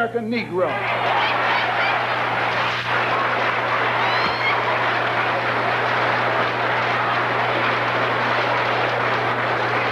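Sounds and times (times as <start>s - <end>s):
audience applauding: 0.6s - 9.9s.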